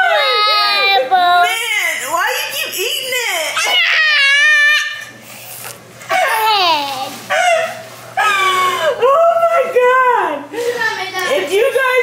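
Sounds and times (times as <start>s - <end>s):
toddler crying and squealing: 3.6s - 5.1s.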